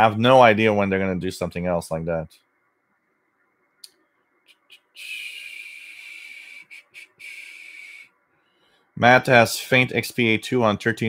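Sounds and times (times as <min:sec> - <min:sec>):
soft high hiss: 0:00.0 - 0:11.0.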